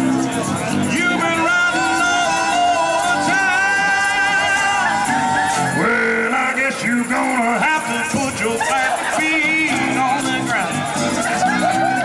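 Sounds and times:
live soul band playing: 0:00.0 - 0:12.0
lead vocal singing: 0:00.8 - 0:12.0.

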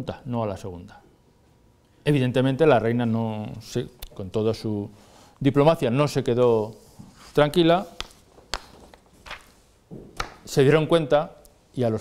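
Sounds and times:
paper rustling: 0:06.9 - 0:09.7.

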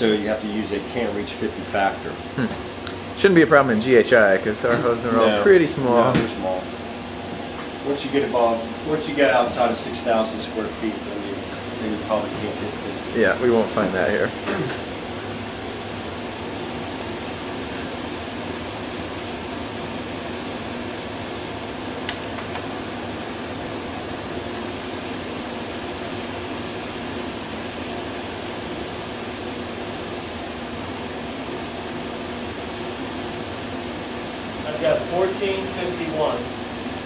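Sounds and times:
fan running steadily: 0:00.0 - 0:37.0.

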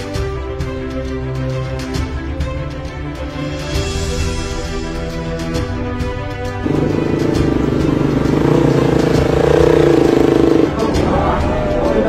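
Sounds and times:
motorcycle engines at low revs: 0:06.6 - 0:11.1.

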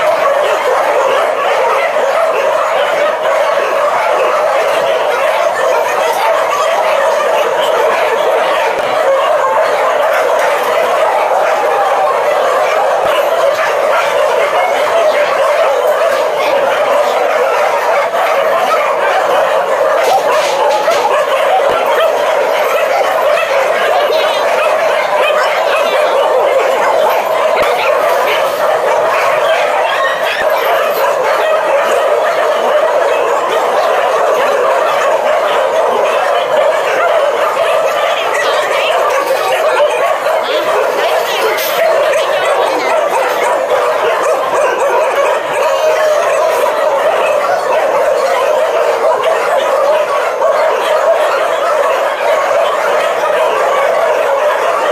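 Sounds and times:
pack of dogs barking: 0:00.0 - 0:54.9.

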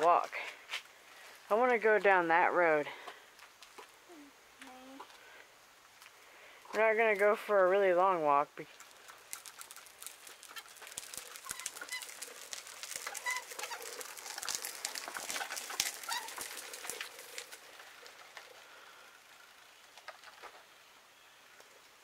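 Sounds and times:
tricycle rattling over concrete: 0:01.2 - 0:04.0, 0:06.0 - 0:22.0.

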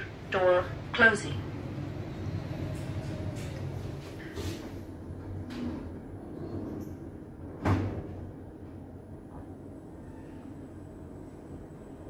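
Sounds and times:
elevator doors humming: 0:00.0 - 0:12.0
elevator door clunk: 0:05.3 - 0:08.6.

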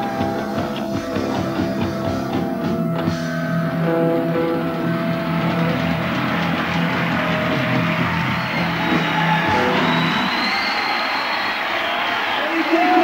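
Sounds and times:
live rock band playing: 0:00.0 - 0:10.8.

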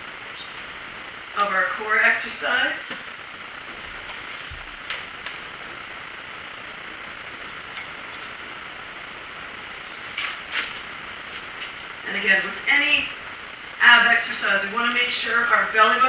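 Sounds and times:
room tone hiss: 0:00.0 - 0:16.0.

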